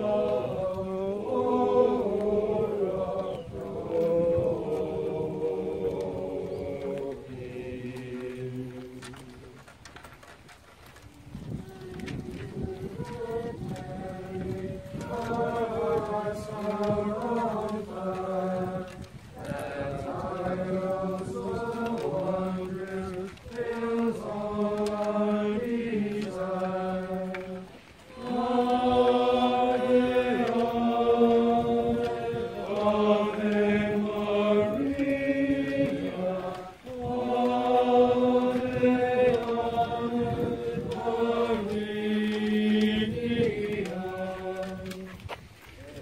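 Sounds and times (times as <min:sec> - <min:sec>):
group singing a hymn: 0:00.0 - 0:10.3, 0:10.9 - 0:46.0.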